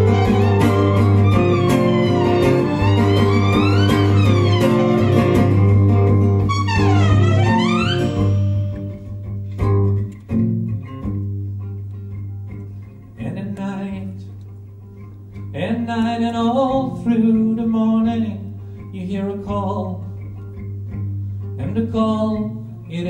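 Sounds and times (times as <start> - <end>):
lead instrument sliding in pitch: 0.0 - 9.0
live band playing: 0.0 - 9.2
plucked notes: 0.0 - 13.1
sustained low bass note: 6.5 - 9.0.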